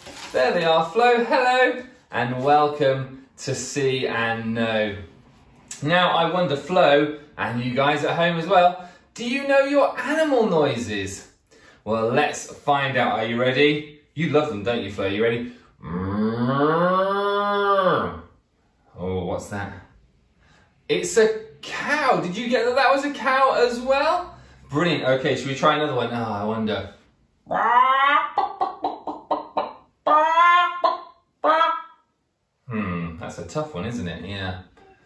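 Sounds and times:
man imitating hen clucking: 0:27.5 - 0:31.8.

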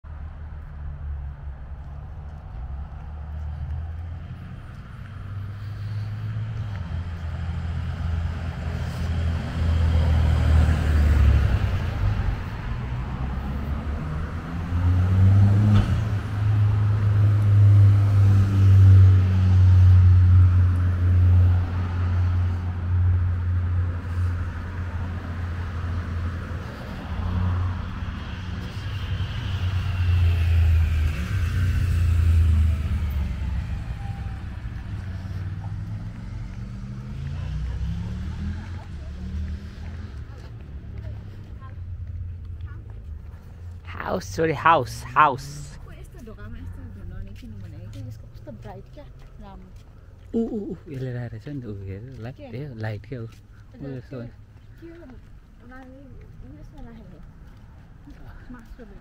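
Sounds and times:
cars passing on road: 0:00.0 - 0:59.0.

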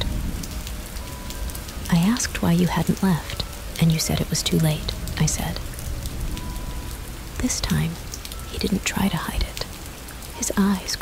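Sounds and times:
low rumble: 0:00.0 - 0:09.9
rain drop ticks: 0:00.0 - 0:11.0
rain hissing on a surface: 0:00.0 - 0:11.0
person speaking: 0:07.4 - 0:09.7.

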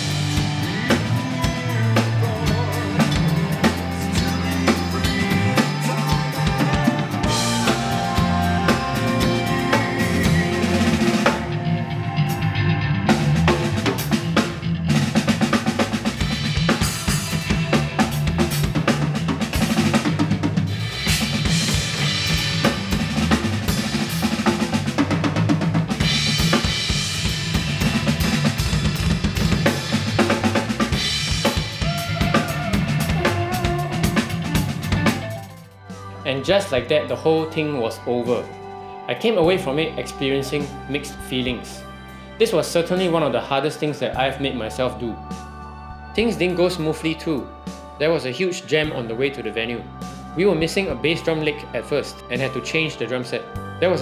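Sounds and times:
drum kit played busily: 0:00.0 - 0:37.5.

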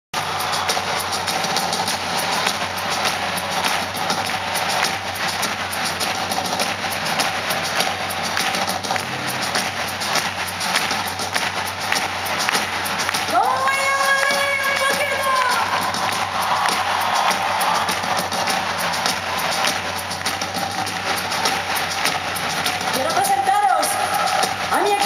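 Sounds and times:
crowd noise: 0:00.2 - 0:25.0.

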